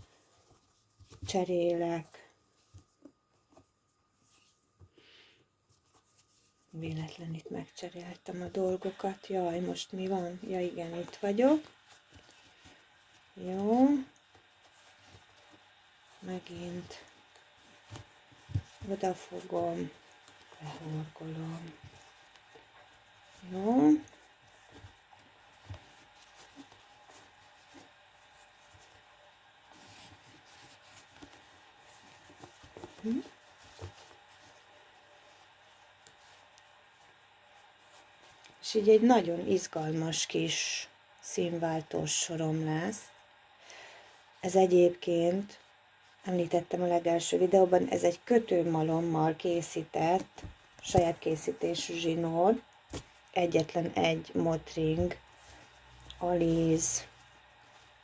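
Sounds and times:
cord rustling with crochet hook: 0:05.7 - 0:38.8.

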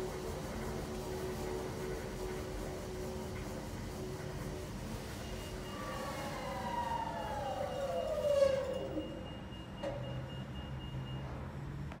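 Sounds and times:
washing machine drum whine: 0:00.0 - 0:11.8.

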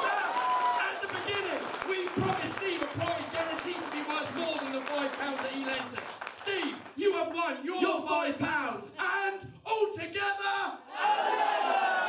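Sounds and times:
long drawn-out yell: 0:00.0 - 0:01.0.

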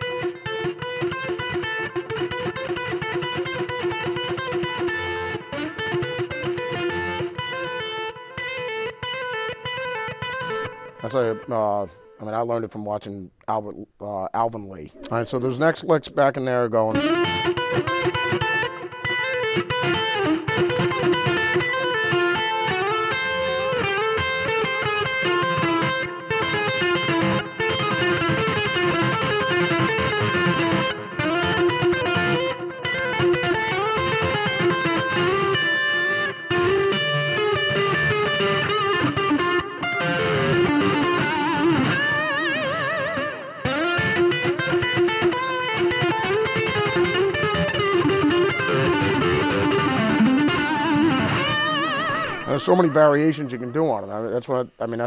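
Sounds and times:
distorted electric guitar blues lick: 0:00.0 - 0:12.4, 0:14.9 - 0:55.0.

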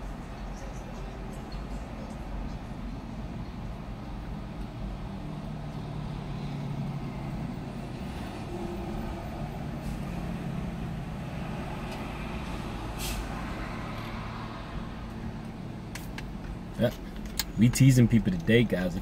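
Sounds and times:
short sharp hiss: 0:13.0 - 0:13.3.

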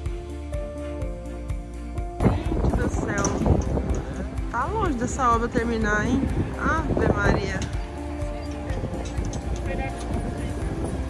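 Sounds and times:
background music: 0:00.0 - 0:11.0
wind buffeting microphone: 0:02.2 - 0:11.0
crowd chatter: 0:07.6 - 0:11.0.

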